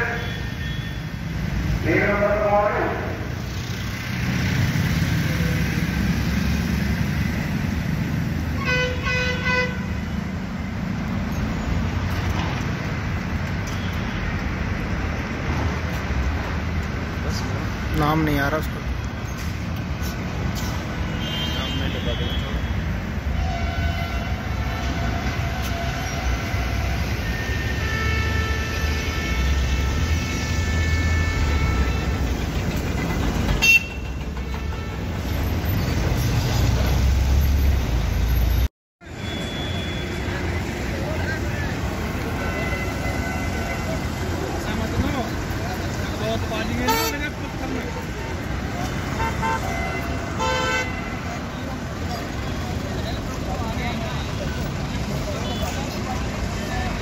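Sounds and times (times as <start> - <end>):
low traffic rumble: 0.0 - 57.0
vehicle horns honking: 8.6 - 10.1, 21.1 - 32.4, 33.6 - 35.3, 41.5 - 44.4, 46.7 - 47.4, 48.9 - 51.7.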